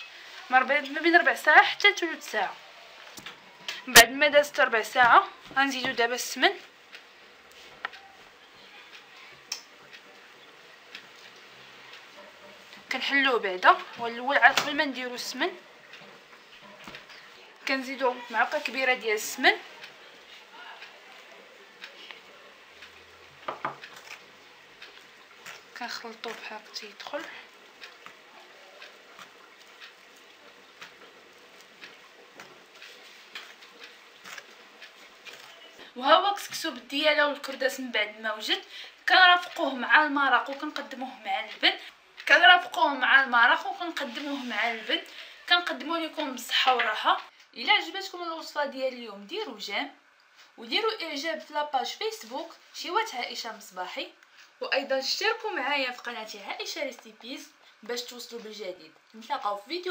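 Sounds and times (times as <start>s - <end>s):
couscous rustling in clay dish: 43.5s - 45.0s.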